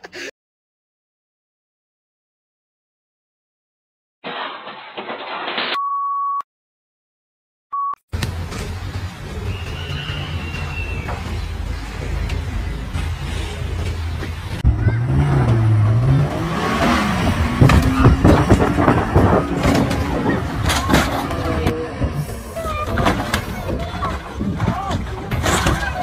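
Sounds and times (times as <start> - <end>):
vehicle tumbling knocks and crashes: 4.2 - 5.8, 13.9 - 26.0
car road noise: 8.2 - 26.0
engine revving hard: 14.6 - 22.4.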